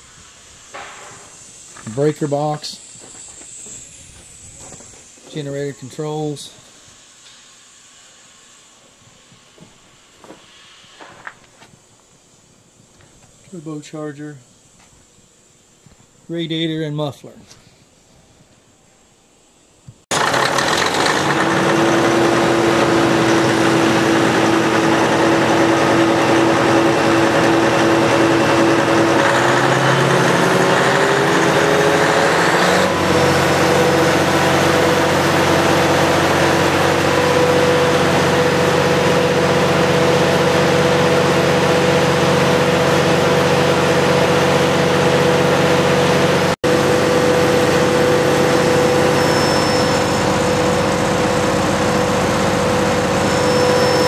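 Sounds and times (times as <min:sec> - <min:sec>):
diesel generator engine running: 0:20.1 - 0:54.0.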